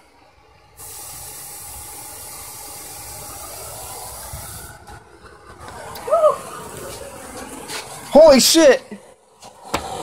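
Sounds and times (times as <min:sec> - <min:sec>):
aerosol spray hiss: 0:00.8 - 0:04.8.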